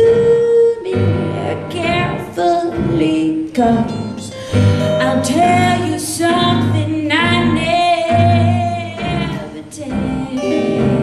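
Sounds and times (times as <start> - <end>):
woman singing jazz: 0.0 - 11.0.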